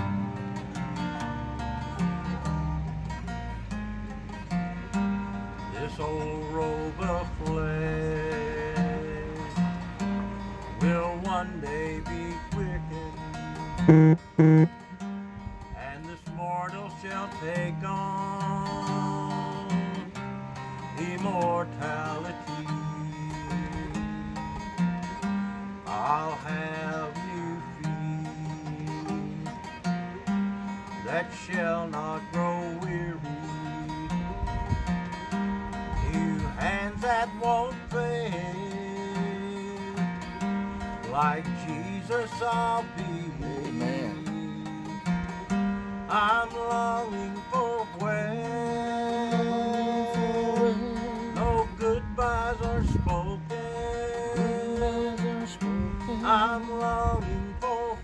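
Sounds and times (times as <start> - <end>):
acoustic guitar strummed and picked: 0.0 - 58.0
person singing: 43.0 - 44.7.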